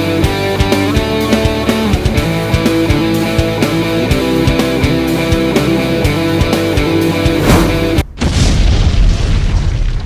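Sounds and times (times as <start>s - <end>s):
rock music: 0.0s - 8.0s.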